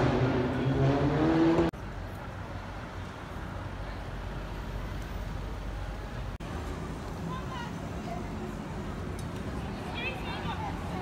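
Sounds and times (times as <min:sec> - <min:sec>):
traffic noise: 0:00.0 - 0:11.0
people's voices: 0:07.0 - 0:11.0.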